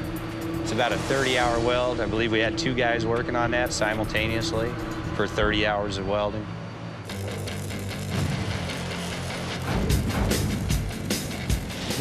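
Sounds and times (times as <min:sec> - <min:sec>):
arc welding crackling: 0:07.0 - 0:12.0
background music with bass line: 0:07.1 - 0:12.0.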